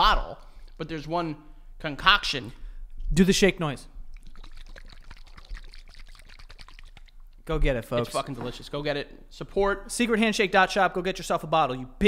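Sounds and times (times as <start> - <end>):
liquid sloshing in shaken bottle: 4.0 - 7.5.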